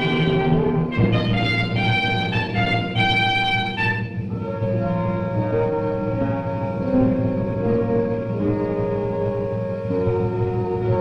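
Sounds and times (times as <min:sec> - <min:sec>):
orchestral music with violins: 0:00.0 - 0:11.0.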